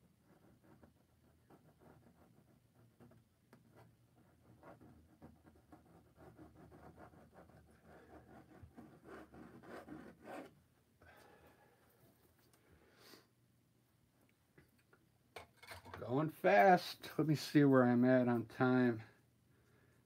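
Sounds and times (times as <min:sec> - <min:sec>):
palette knife scraping canvas: 0:04.5 - 0:10.6.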